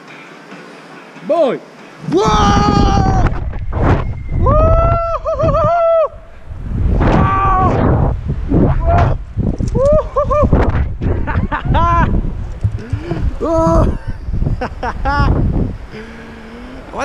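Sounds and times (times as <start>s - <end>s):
wind rushing over microphone: 2.0s - 17.0s.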